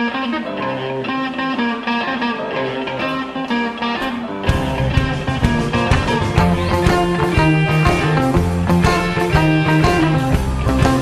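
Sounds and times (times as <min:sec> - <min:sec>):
blues guitar playing: 0:00.0 - 0:11.0.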